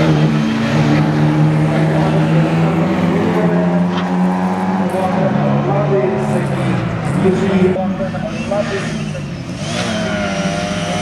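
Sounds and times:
rally car engine revving high: 0.0 - 11.0.

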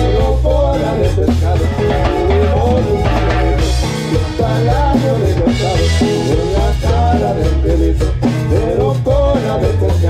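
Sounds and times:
accordion melody: 0.0 - 8.9
acoustic guitar: 0.0 - 10.0
drum kit: 0.0 - 10.0
electric bass: 0.0 - 10.0.

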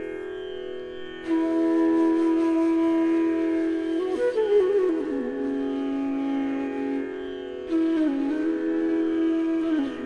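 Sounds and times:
instrumental music: 0.0 - 10.0.

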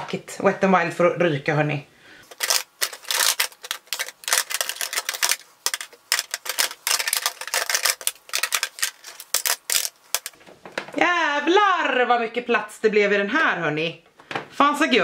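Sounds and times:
plastic compacts clacking: 2.3 - 10.4.

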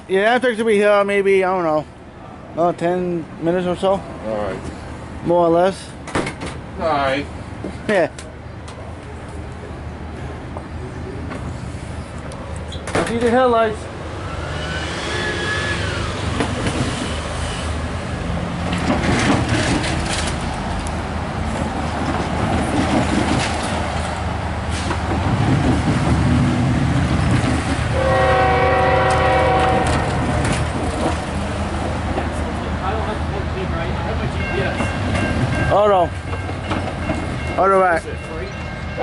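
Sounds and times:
train rumbling: 0.0 - 39.0
locomotive air horn chord: 27.9 - 30.2.

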